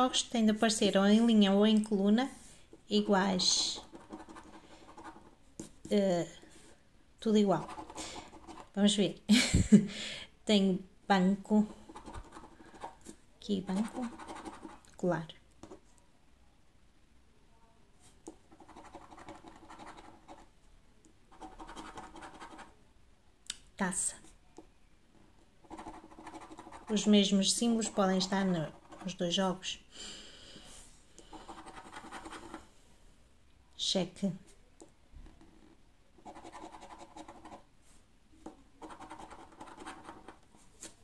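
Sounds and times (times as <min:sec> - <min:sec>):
coin scratching scratch card: 0:03.6 - 0:05.3, 0:07.6 - 0:08.7, 0:25.7 - 0:27.1, 0:31.3 - 0:32.6, 0:36.2 - 0:37.6, 0:38.8 - 0:40.4.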